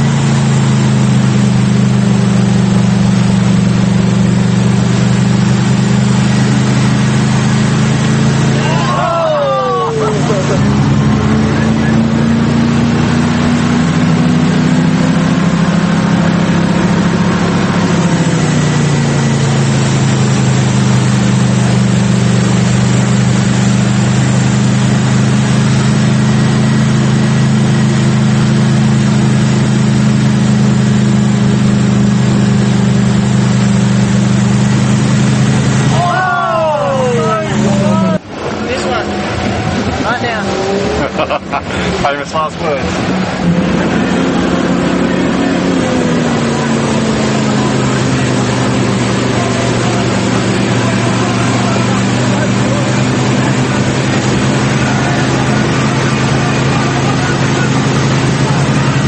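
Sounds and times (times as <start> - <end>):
jet ski engine running: 0.0 - 59.0
water spray rushing: 0.0 - 59.0
people shouting: 8.5 - 10.6, 35.9 - 38.2.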